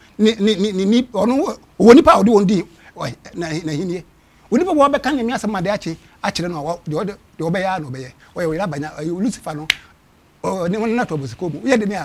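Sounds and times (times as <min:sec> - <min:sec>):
man talking: 0:00.2 - 0:09.8, 0:10.4 - 0:12.0
finger snap: 0:09.7 - 0:09.9.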